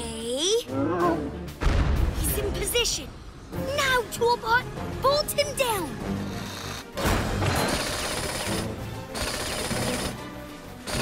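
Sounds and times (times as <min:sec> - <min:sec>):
low thump: 0:01.6 - 0:02.2.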